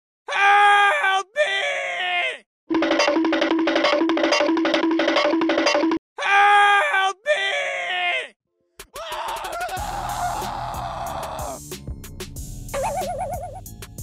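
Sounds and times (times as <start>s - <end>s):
cartoon man screaming: 0.3s - 2.4s, 6.2s - 11.6s
man crying out: 0.3s - 2.4s, 6.2s - 11.6s
upbeat music: 2.7s - 6.0s, 9.5s - 14.0s.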